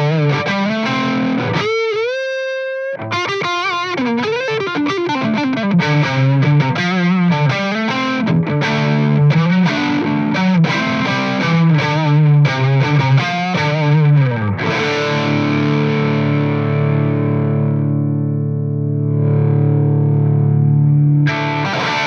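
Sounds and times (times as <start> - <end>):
overdriven electric guitar: 0.0 - 22.0.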